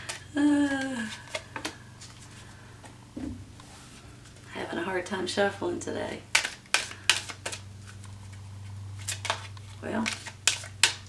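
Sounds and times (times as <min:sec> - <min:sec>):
cards slapping while shuffled: 0:00.0 - 0:02.2, 0:06.3 - 0:08.4, 0:09.0 - 0:11.0.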